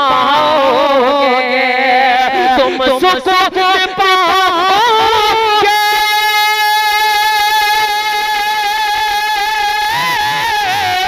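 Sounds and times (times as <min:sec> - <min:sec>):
man singing through loudspeakers: 0:00.0 - 0:11.0.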